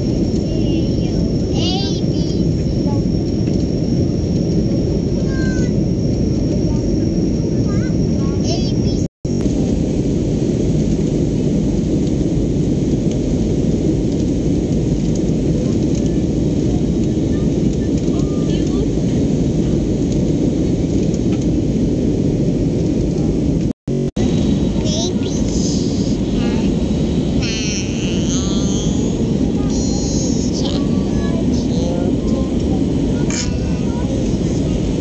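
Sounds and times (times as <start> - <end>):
jet airliner cabin noise: 0.0 - 35.0.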